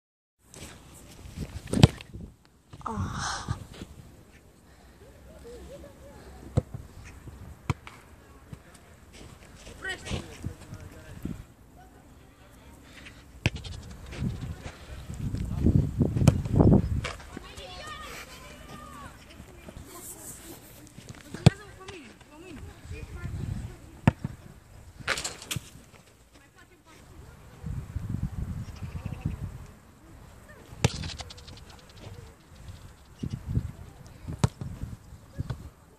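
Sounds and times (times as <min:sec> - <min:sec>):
football kick thud: 0:16.2 - 0:17.2
ball hitting goal net: 0:25.0 - 0:25.7, 0:30.8 - 0:31.6.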